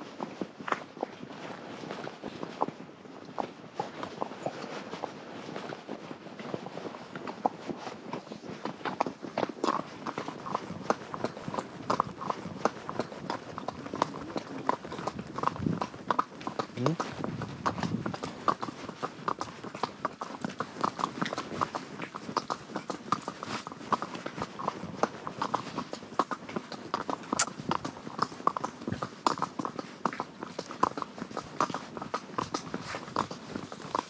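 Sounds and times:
horse hooves on gravel: 0.0s - 34.0s.

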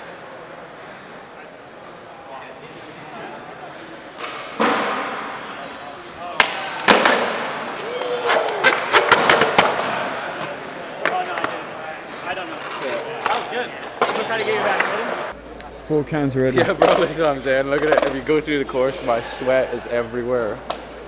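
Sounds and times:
skateboard smacking: 6.4s - 7.5s.

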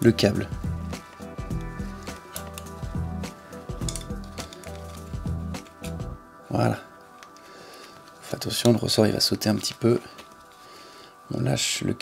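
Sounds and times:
background music: 0.0s - 12.0s
small metallic clicks: 2.1s - 2.8s, 3.8s - 6.0s.

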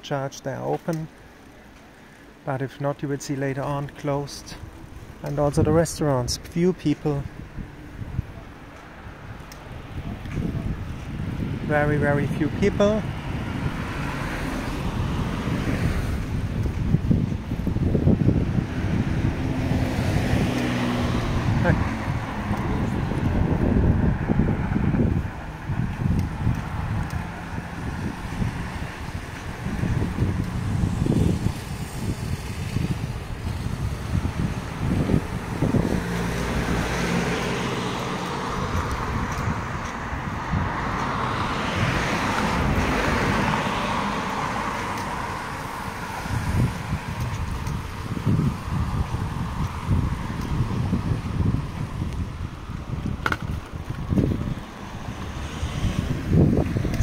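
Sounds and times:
cars passing: 0.0s - 57.0s
wind buffeting microphone: 3.1s - 57.0s.

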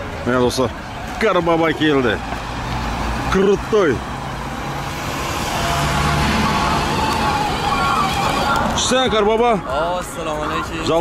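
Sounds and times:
road noise: 0.0s - 11.0s
vehicle engine humming: 0.0s - 11.0s.

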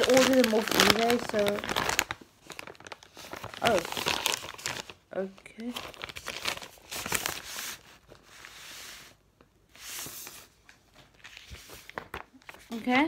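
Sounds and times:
packaging tearing and crinkling: 0.0s - 8.3s.

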